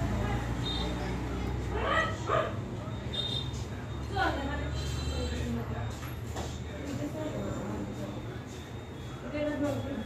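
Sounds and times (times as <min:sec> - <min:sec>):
dog yipping: 0:01.7 - 0:02.6.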